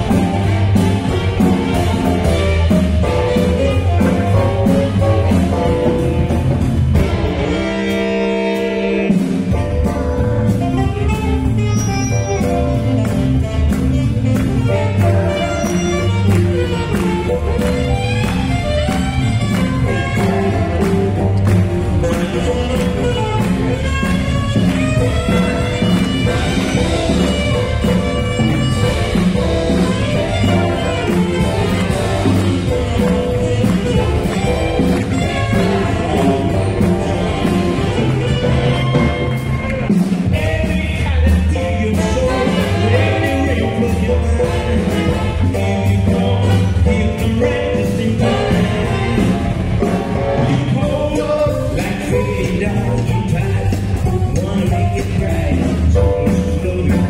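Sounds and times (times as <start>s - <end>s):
saxophones playing: 0.0s - 40.8s, 41.7s - 50.9s
drums: 0.0s - 57.0s.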